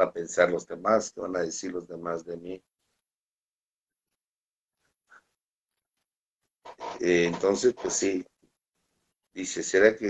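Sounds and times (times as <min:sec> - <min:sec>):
man speaking: 0:00.0 - 0:02.7, 0:06.8 - 0:08.4, 0:09.4 - 0:10.0.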